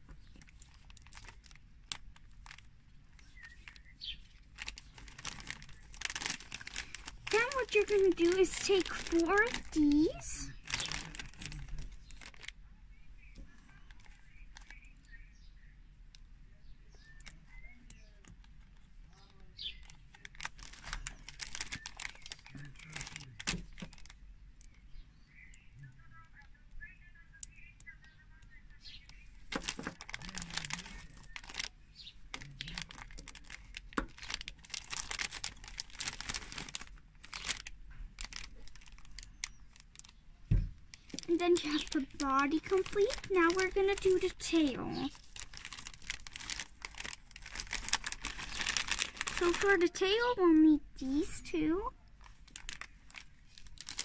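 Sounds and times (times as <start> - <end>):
plastic bag crinkling: 0.0 - 12.6, 13.8 - 14.9, 18.2 - 24.8, 29.0 - 40.2, 40.8 - 51.5, 52.1 - 54.0.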